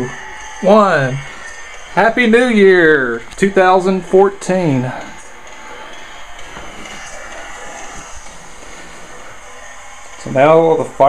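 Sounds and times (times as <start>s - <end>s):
crowd cheering on television: 0.0s - 11.0s.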